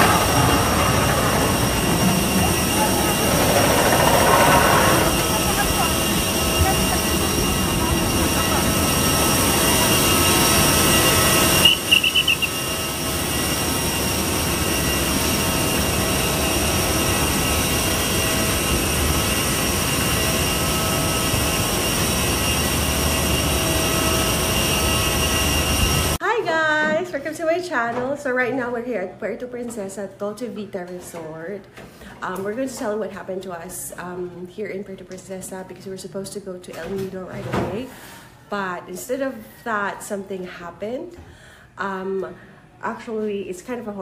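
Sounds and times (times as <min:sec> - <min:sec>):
high held tones: 0:00.0 - 0:13.3
jet turbines whining: 0:00.0 - 0:26.2
short warbling chirp: 0:11.6 - 0:12.6.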